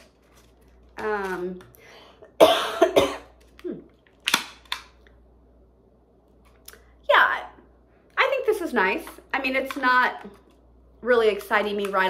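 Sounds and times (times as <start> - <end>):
woman coughing: 2.4 - 3.3.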